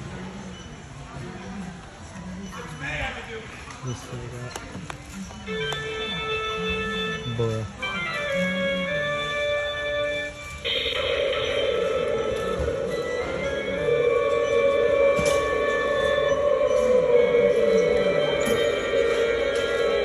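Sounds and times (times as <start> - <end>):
electronic tune from small speaker: 8.4 - 20.0.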